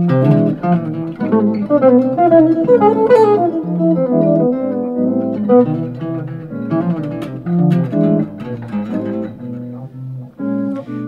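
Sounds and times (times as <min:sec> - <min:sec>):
electric guitar jazz line: 0:00.0 - 0:11.0.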